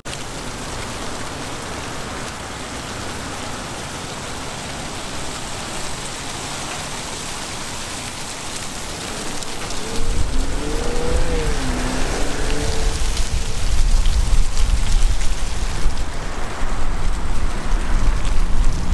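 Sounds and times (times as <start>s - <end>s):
low rumble: 8.8s - 18.9s.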